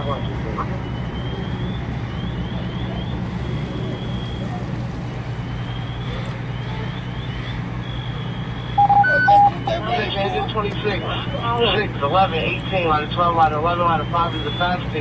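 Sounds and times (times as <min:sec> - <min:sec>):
fire truck engine idling: 0:00.0 - 0:15.0
high electronic chirps: 0:08.8 - 0:09.7.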